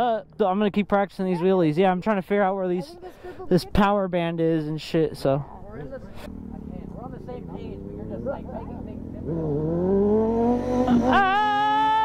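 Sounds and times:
motorcycle engine accelerating: 5.7 - 12.0.

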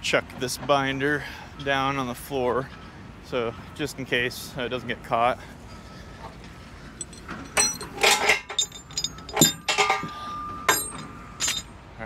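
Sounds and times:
metal chains clanking: 6.9 - 11.8.

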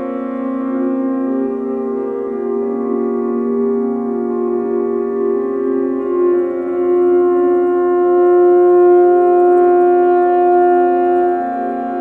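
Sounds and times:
synthesizer sustained chord: 0.0 - 12.0.

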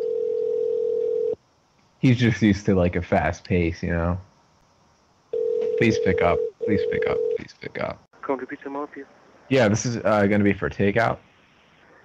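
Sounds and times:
telephone line tone: 0.0 - 1.4, 5.4 - 7.4.

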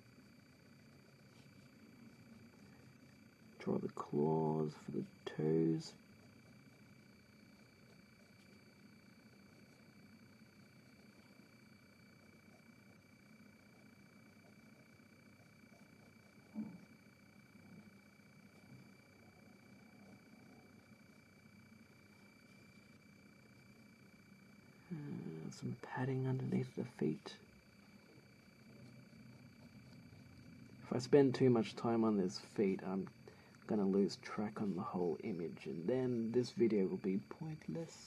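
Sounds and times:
faint electrical tones: 0.0 - 38.0.

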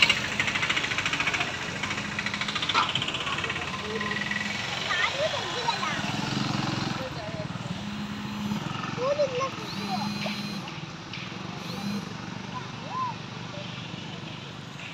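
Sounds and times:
motorcycle engine running: 0.0 - 14.9
voices chattering: 0.0 - 14.9.

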